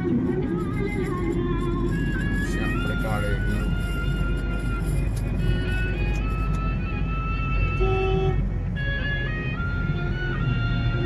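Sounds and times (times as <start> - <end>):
car road rumble: 0.0 - 11.0.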